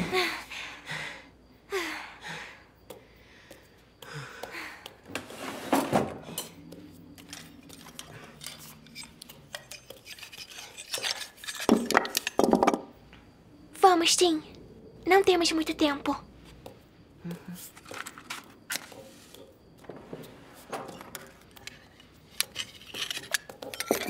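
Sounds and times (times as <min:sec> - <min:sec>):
metal cutlery clinking on table: 0:22.4 - 0:24.0.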